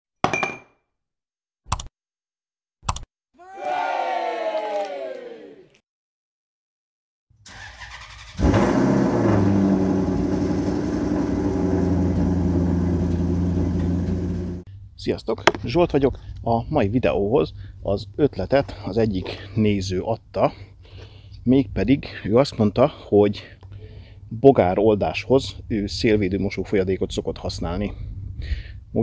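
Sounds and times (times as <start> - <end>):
sharp clicks: 1.7 - 1.9, 2.8 - 3.1
car engine starting and idling: 7.4 - 14.6.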